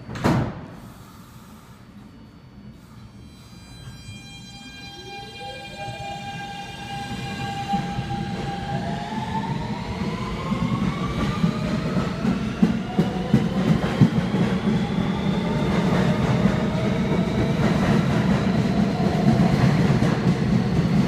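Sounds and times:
train propulsion whine: 0.8 - 21.0.

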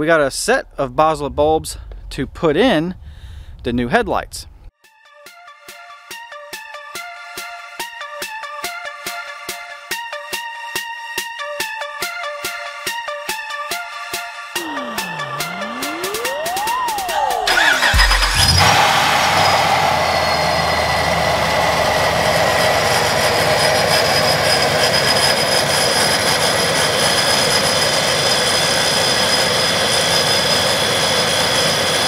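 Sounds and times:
short electronic sweep: 14.6 - 18.8
high supercharger whine: 17.4 - 32.0
engine starting and idling: 17.5 - 23.2.

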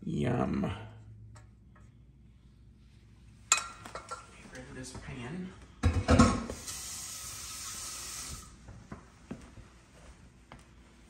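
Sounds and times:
tap water running into pan: 6.3 - 8.6.

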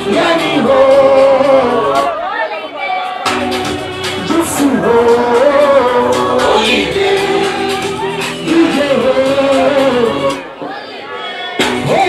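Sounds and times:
man singing into a microphone: 0.0 - 2.3, 3.6 - 10.7, 11.3 - 12.0
loud music: 0.0 - 2.4, 3.1 - 12.0.

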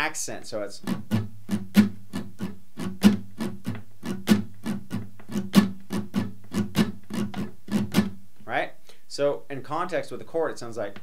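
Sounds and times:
acoustic guitar strumming: 0.0 - 8.3.

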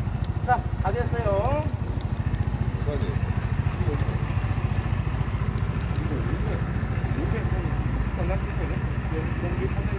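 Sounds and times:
scooter engine idling: 0.0 - 9.9.

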